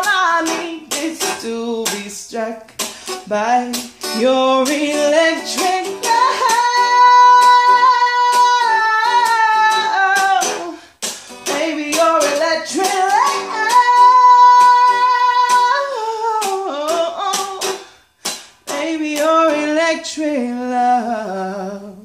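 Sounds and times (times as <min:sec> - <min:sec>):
strummed guitar: 0:00.0 - 0:22.0.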